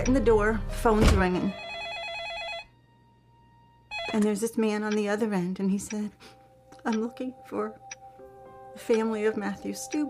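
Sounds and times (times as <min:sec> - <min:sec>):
telephone electronic ringing: 0:01.4 - 0:02.7, 0:03.9 - 0:04.4.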